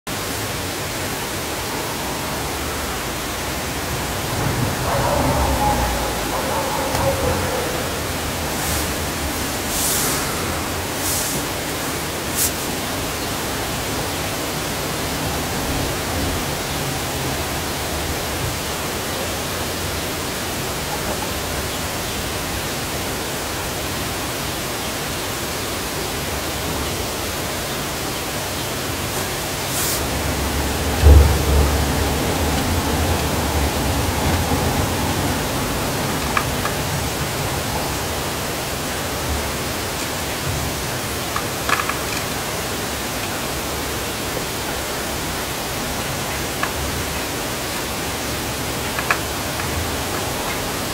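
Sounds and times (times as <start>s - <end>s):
steady hiss: 0.1s - 50.9s.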